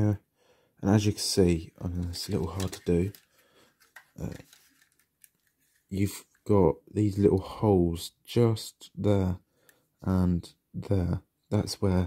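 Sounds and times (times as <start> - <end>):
man saying uh: 10.0 - 12.0.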